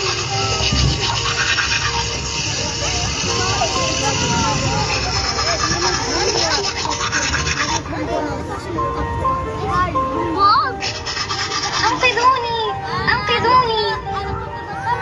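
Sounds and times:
teeth brushing: 0.0 - 7.8, 10.8 - 12.0
children talking: 0.0 - 15.0
light music: 0.0 - 15.0.

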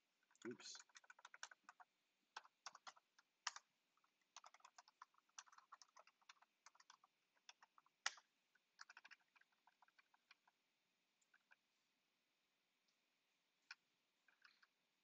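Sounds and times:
typing on computer keyboard: 0.3 - 10.6, 13.7 - 14.7.

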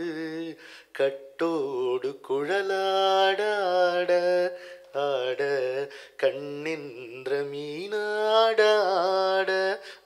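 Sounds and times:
man singing unaccompanied: 0.0 - 10.0
singer breathing: 0.6 - 0.9, 4.5 - 4.9, 5.9 - 6.2, 9.8 - 10.0.

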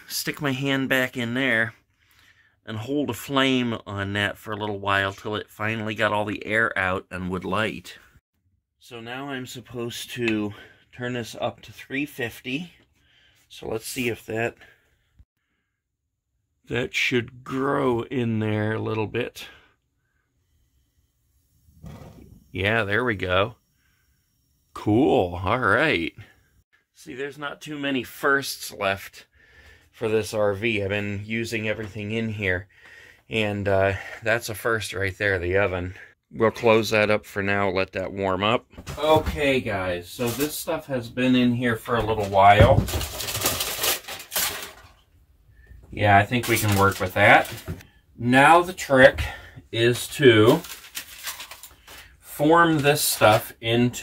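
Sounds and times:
aluminium foil crinkling: 42.2 - 45.0, 46.2 - 47.8, 49.9 - 53.5.

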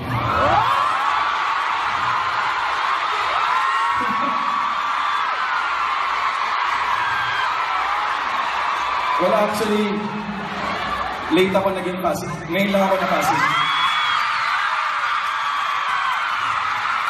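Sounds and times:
crowd screaming and cheering: 0.0 - 17.0
person speaking on stage: 11.3 - 13.7.

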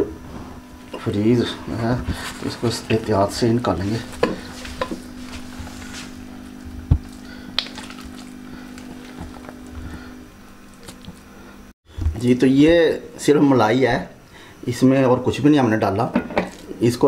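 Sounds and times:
steady low hum: 0.0 - 15.8.

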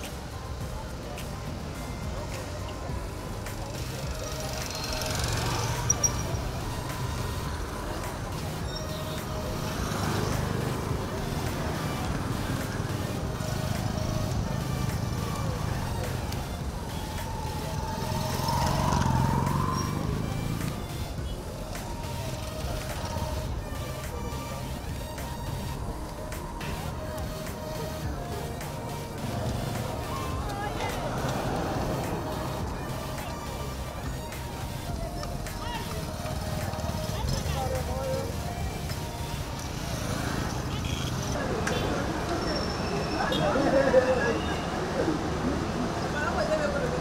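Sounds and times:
indistinct voices: 0.0 - 47.0
small motorcycle engines: 0.0 - 47.0
street traffic: 0.0 - 47.0.

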